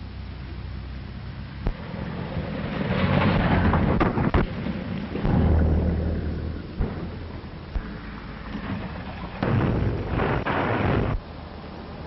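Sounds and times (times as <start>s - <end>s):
rumbling din: 1.7s - 11.2s.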